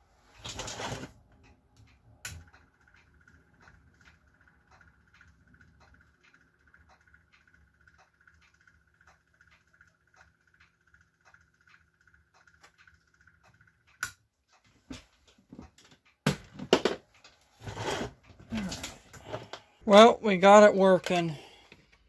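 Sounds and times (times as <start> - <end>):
light ticking: 1.3 - 14.7.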